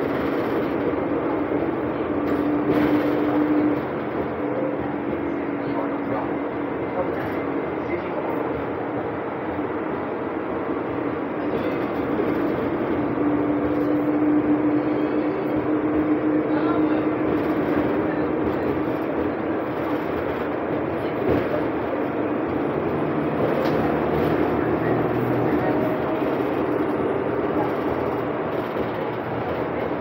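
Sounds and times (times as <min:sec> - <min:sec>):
bus engine and road noise: 0:00.0 - 0:30.0.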